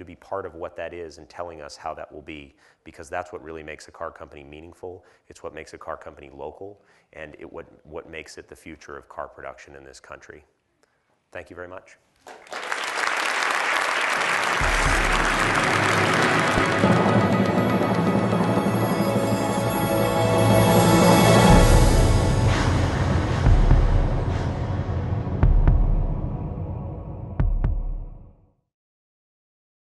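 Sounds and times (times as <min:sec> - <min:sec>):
audience applause: 0:12.2 - 0:21.5
low rumble: 0:14.6 - 0:28.3
music with low bass notes: 0:14.6 - 0:28.3
deep double thump: 0:25.4 - 0:26.3.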